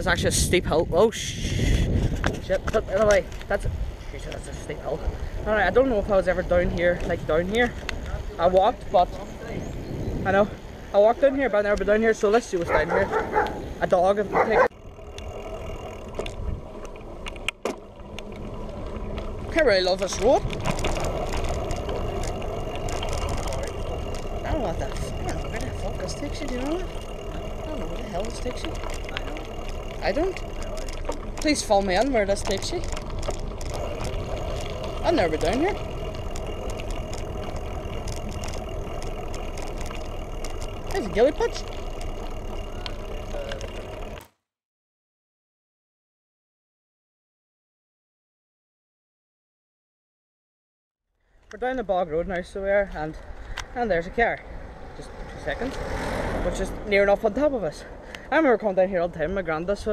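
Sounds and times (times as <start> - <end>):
wind on microphone: 0.0 - 5.6, 6.4 - 10.7, 16.2 - 16.8
wind buffeting: 0.0 - 44.2, 52.1 - 59.9
bicycle tyres rumbling on tarmac: 0.0 - 44.3, 51.3 - 59.9.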